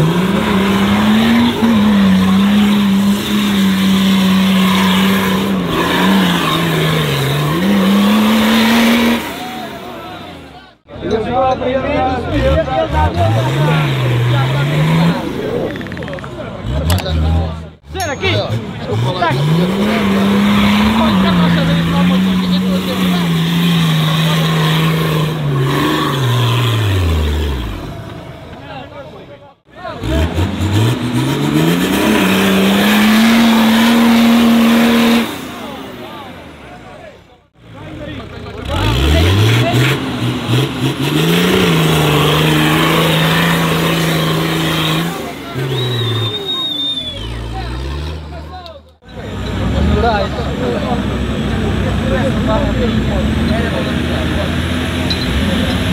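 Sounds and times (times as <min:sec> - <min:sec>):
diesel engine revving hard: 0:00.0 - 0:10.9, 0:11.9 - 0:15.8, 0:16.4 - 0:28.5, 0:29.6 - 0:55.9.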